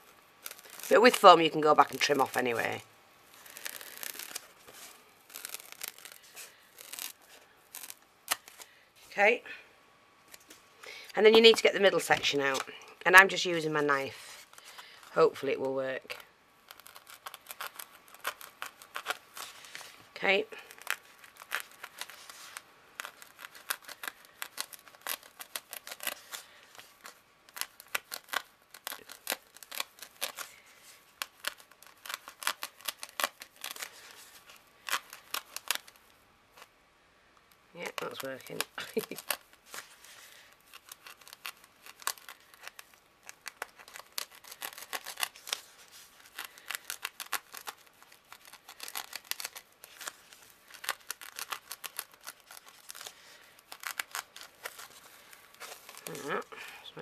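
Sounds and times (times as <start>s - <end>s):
knife cutting foam crackling: 0.4s - 8.7s, 13.8s - 36.0s, 37.8s - 56.5s.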